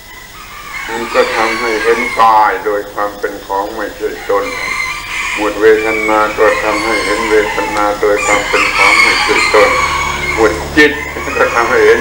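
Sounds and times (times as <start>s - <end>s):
rooster crowing and clucking: 0.0s - 12.0s
man speaking slowly: 0.9s - 4.7s, 5.4s - 9.8s.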